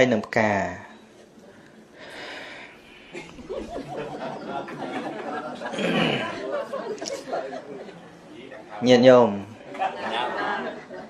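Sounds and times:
people chattering: 0:01.0 - 0:11.0.

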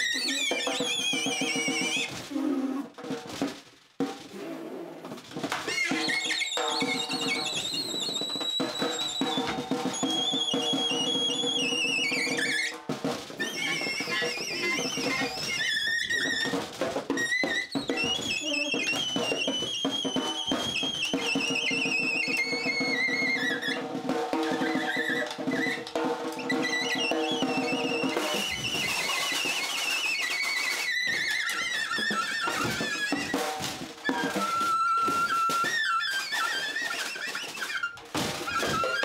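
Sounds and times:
alto saxophone squeals: 0:00.0 - 0:02.2, 0:05.6 - 0:12.8, 0:13.4 - 0:23.8, 0:24.4 - 0:39.0
snare drum hits: 0:05.3 - 0:15.6, 0:16.2 - 0:39.0.

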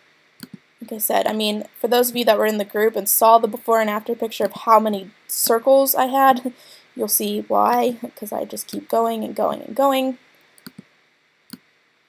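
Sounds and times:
computer mouse clicks: 0:00.4 - 0:00.6, 0:10.6 - 0:10.9.

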